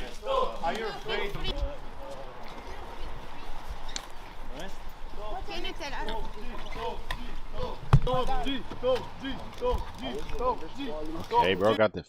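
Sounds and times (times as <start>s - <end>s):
crowd of reporters talking: 0.0s - 11.8s.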